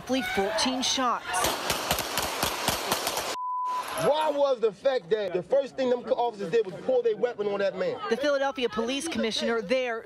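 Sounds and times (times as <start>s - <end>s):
rapid handgun shots: 1.4s - 3.4s
high censor bleep: 3.4s - 4.1s.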